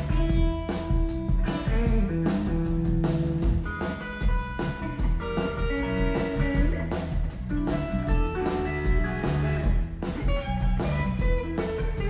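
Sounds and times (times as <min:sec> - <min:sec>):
blues band playing: 0:00.0 - 0:12.0.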